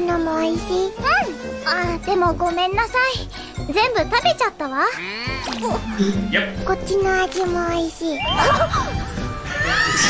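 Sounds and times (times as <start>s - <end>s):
light tinkling background music: 0.0s - 10.0s.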